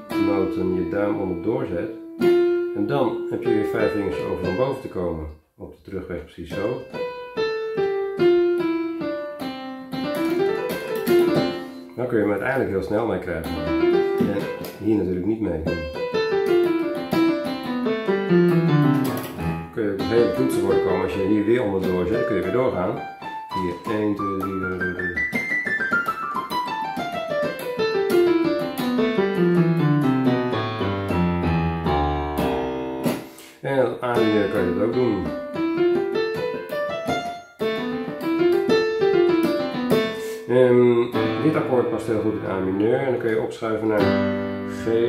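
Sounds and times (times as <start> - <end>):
keyboard piano scale: 0.0 - 5.4, 6.4 - 45.0.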